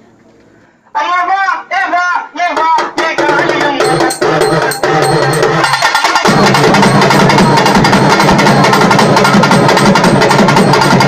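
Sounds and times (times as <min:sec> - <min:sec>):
drum troupe playing fast rhythm: 0:02.6 - 0:11.0.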